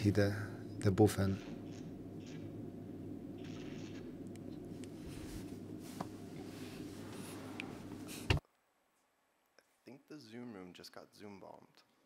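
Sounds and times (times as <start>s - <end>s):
steady low hum: 0.0s - 8.4s
soft rustle: 4.7s - 8.4s.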